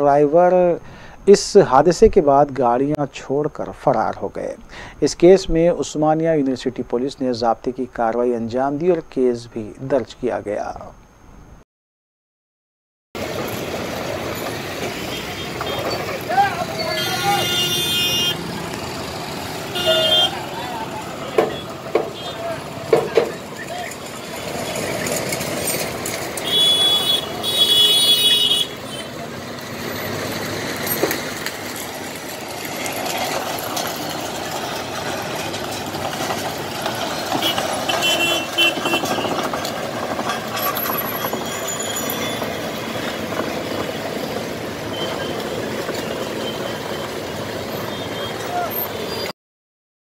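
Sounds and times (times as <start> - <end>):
heavy trucks running: 13.2 - 49.3
indistinct voices: 15.5 - 19.1, 19.7 - 26.2.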